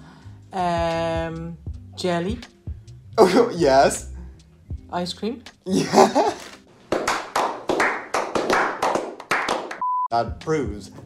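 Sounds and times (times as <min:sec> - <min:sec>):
group of people clapping: 0:06.9 - 0:09.9.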